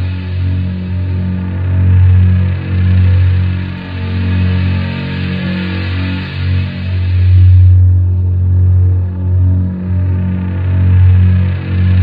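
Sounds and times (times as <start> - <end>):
distorted low droning guitar note: 0.0 - 12.0.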